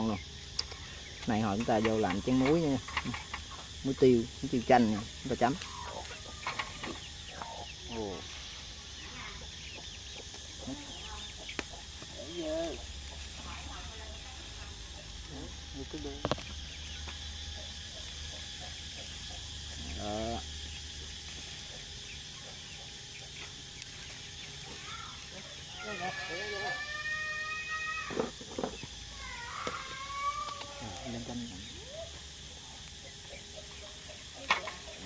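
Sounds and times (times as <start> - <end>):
chickens clucking: 0.0 - 26.2, 28.1 - 35.0.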